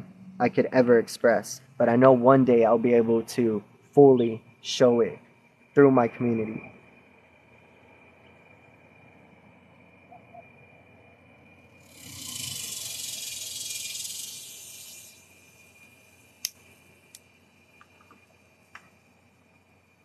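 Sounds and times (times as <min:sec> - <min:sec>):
faint high whine: 0:00.0 - 0:20.0
breath hissing out smoke: 0:11.3 - 0:17.7
sharp clicks: 0:16.4 - 0:17.2.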